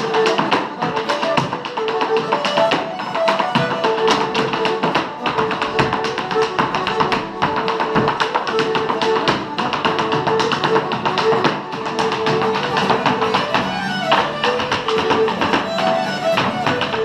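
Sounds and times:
traditional music with guitar: 0.0s - 17.0s
hard-shoe taps on wooden floor: 0.1s - 17.0s.

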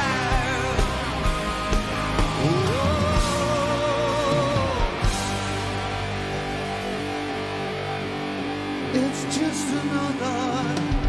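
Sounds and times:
person singing with vibrato: 0.0s - 1.4s, 2.1s - 6.0s, 8.8s - 11.0s
ringing guitar chord: 0.0s - 10.8s.

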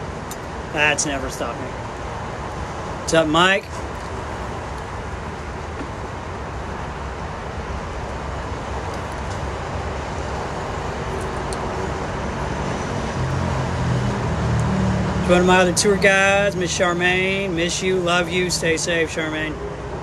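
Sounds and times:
traffic rumble: 0.0s - 20.0s
vehicle engine hum: 0.0s - 20.0s.

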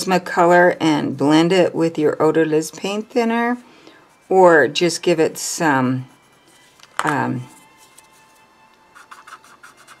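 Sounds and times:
blending stump rubbing on paper: 9.0s - 10.0s.

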